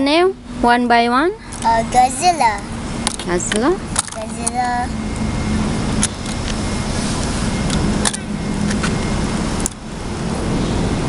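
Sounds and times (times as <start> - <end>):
road noise: 0.0 - 11.0
vehicle engine hum: 0.0 - 11.0.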